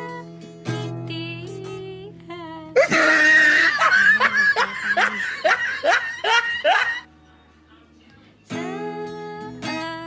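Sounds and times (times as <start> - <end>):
woman laughing loudly: 2.8 - 7.1.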